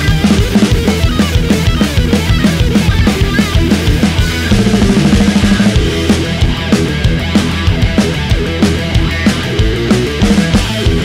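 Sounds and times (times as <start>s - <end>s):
bass guitar: 0.0s - 11.0s
distorted electric guitar: 0.0s - 11.0s
driving drum beat: 0.0s - 11.0s.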